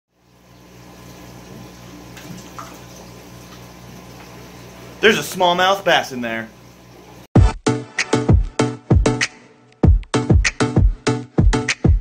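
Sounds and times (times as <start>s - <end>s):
pump electrical hum: 0.1s - 7.3s
water splashing: 0.8s - 5.5s.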